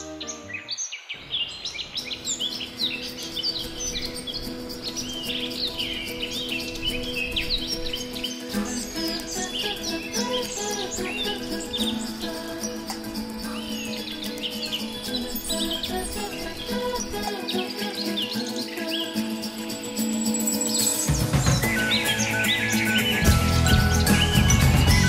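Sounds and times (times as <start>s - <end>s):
soft sustained background music: 0.0s - 1.0s, 1.6s - 25.0s
birds chirping and singing: 0.0s - 25.0s.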